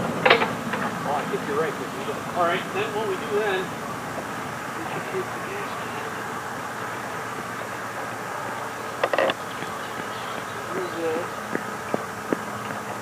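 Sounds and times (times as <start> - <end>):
faint low voices: 0.0 - 3.8, 4.6 - 11.5
steady hiss: 0.0 - 13.0.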